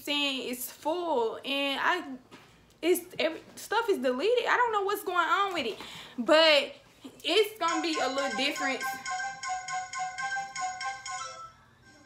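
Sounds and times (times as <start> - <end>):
phone ringtone melody: 7.7 - 12.0.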